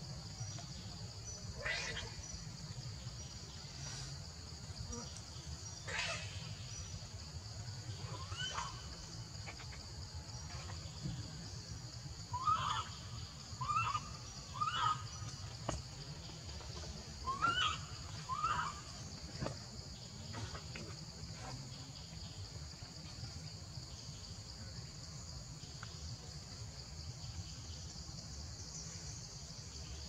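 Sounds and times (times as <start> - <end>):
high-pitched insect chorus: 0.0 - 30.0.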